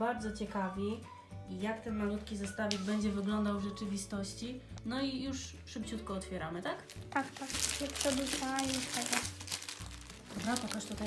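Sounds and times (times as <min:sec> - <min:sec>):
plastic wrap tearing and crinkling: 0:06.8 - 0:11.0.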